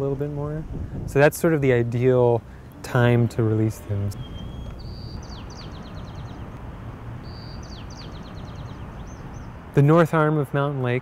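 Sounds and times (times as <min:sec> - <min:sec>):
songbird singing: 0:00.0 - 0:11.0.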